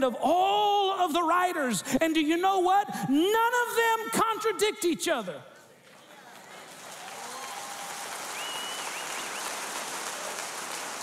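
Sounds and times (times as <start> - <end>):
congregation applauding: 5.9 - 11.0.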